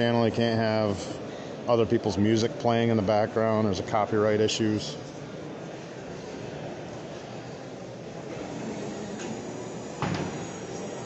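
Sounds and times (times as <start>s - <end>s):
faint distant voices: 0.0s - 11.0s
indoor hall hubbub: 0.0s - 11.0s.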